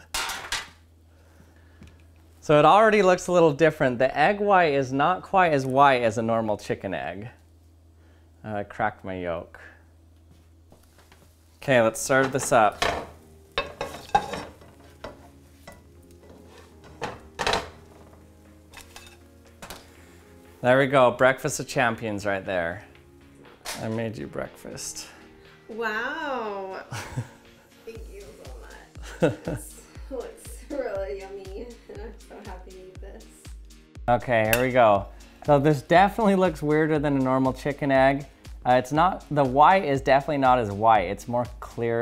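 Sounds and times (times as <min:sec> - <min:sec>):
frying pan clattering on stove: 0:12.0 - 0:18.2.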